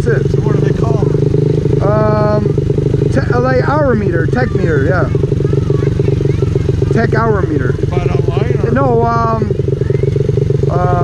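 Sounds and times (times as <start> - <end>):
small motorbike engine idling: 0.0 - 11.0.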